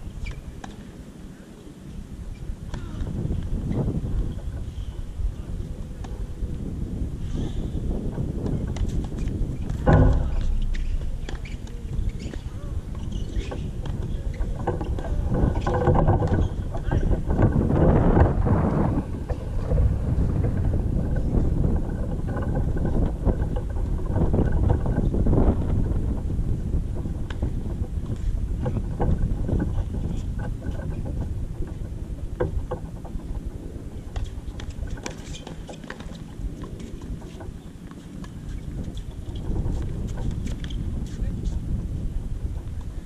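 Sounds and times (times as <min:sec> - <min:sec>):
wind buffeting microphone: 0:00.0 - 0:43.0.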